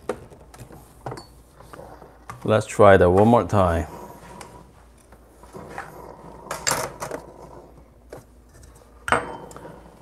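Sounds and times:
knocks and clinks of cup and metal: 0:01.0 - 0:01.4, 0:08.6 - 0:09.8.

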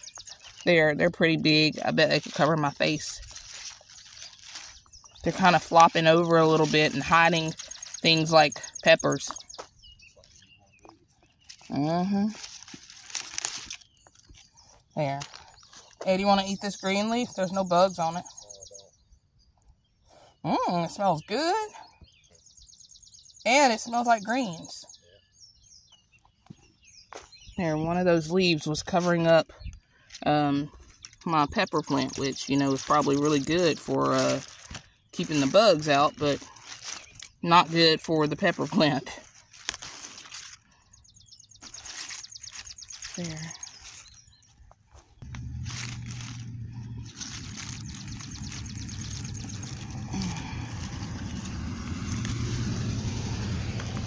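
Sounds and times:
bird trilling: 0:00.0 - 0:10.7, 0:45.1 - 0:54.0
leaves rustling and crackling: 0:00.0 - 0:18.1, 0:28.2 - 0:54.0
leaf snapping: 0:03.2 - 0:08.1, 0:11.5 - 0:14.4, 0:36.4 - 0:37.4, 0:38.6 - 0:40.7, 0:45.2 - 0:54.0.

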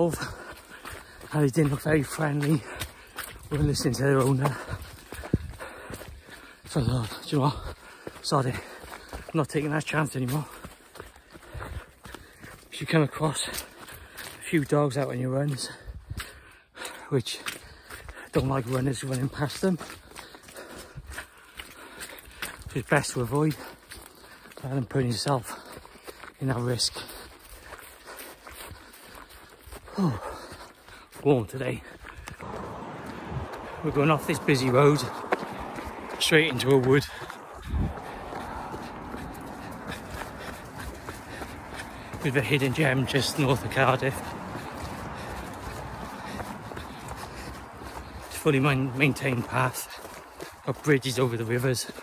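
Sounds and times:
footfalls on a trail: 0:00.0 - 0:52.0.

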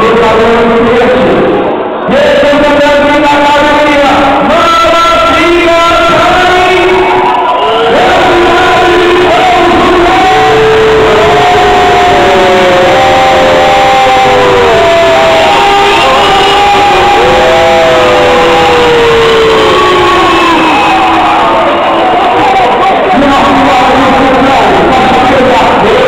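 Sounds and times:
crowd shouting and chanting: 0:00.0 - 0:26.0.

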